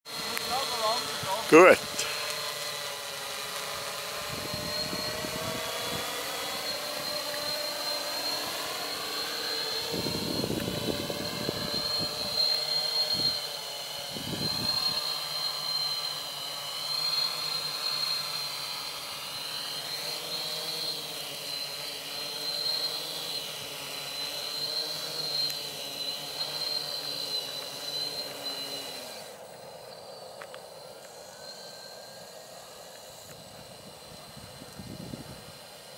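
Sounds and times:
drone propellers whining: 0.1s - 35.9s.

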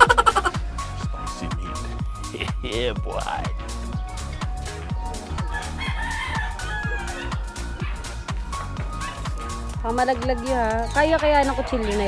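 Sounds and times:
background music with steady beat: 0.0s - 12.0s
rooster crowing: 5.3s - 9.6s.

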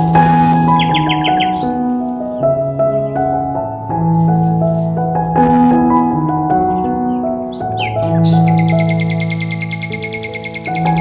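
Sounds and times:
bird chirps: 0.0s - 1.8s, 6.8s - 11.0s
high-pitched bird trill: 0.0s - 1.8s, 6.8s - 11.0s
calm background music: 0.0s - 11.0s.

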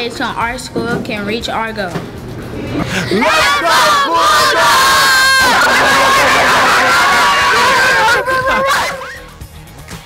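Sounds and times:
excited voices: 2.8s - 9.3s
children and adult cheering: 3.1s - 9.2s.

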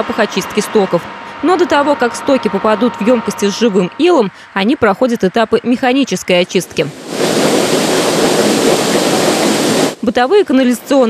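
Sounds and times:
churning wastewater rushing: 6.8s - 10.1s.

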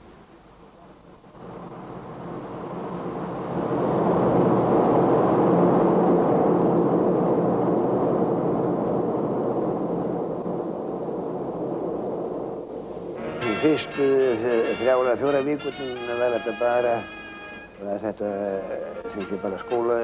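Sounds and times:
jet airliner engines droning: 13.1s - 20.0s.

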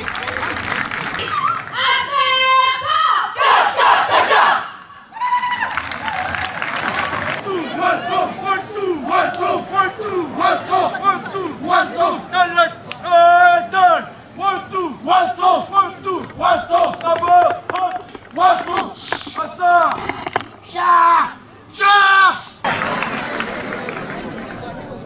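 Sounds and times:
crowd shouting in unison: 1.2s - 5.7s, 7.3s - 16.9s.

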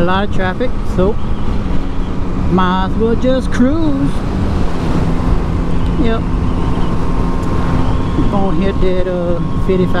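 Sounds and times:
motorcycle engine humming: 0.0s - 10.0s
wind rumbling over microphone: 0.0s - 10.0s.

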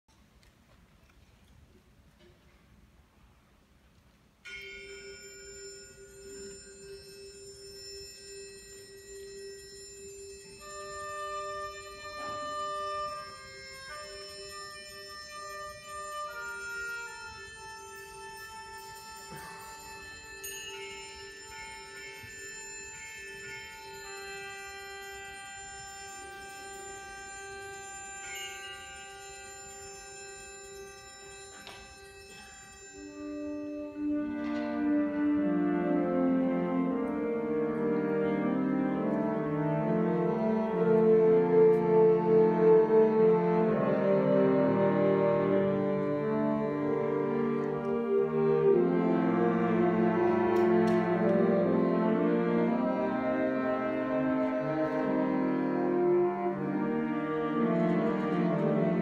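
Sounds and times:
bell-like metallic percussion: 4.4s - 59.0s
wind ensemble sustained chord: 33.1s - 59.0s.

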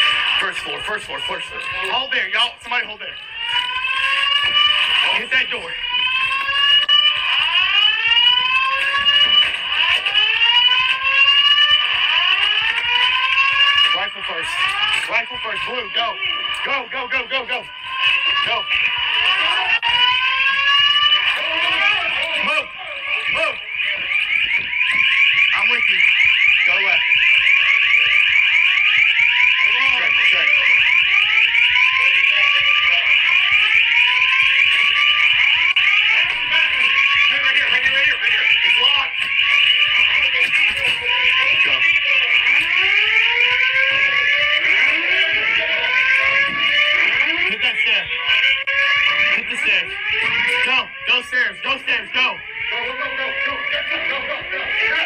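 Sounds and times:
fire alarm blaring: 0.0s - 55.0s.

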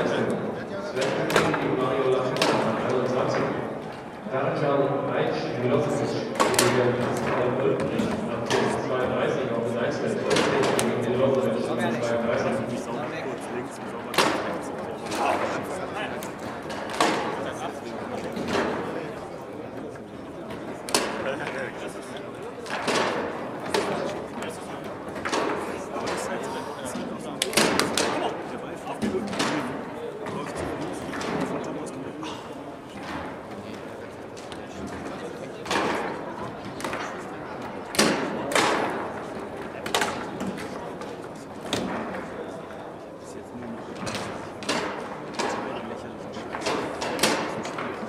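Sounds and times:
murmur of voices: 0.0s - 48.0s.

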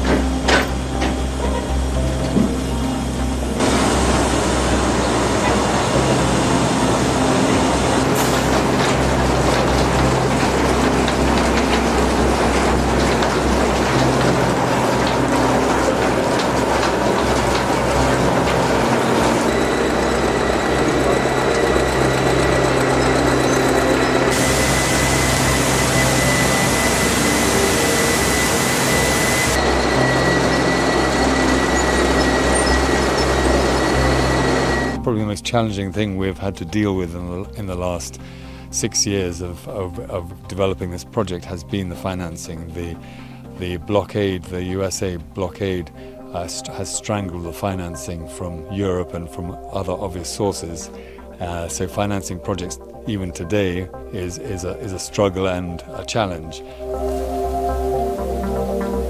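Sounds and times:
mill machinery running: 0.0s - 35.1s, 56.6s - 59.0s.

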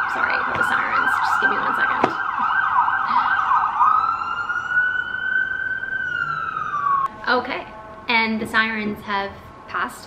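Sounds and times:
emergency vehicle siren: 0.0s - 7.1s.

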